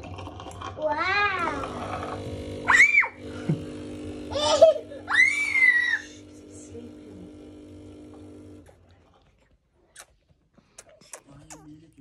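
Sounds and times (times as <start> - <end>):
bottle machine humming: 0.0 - 8.7.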